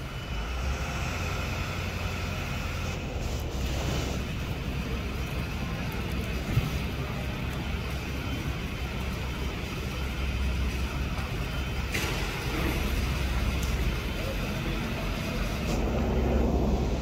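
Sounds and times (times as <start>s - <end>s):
low background rumble: 0.0s - 17.0s.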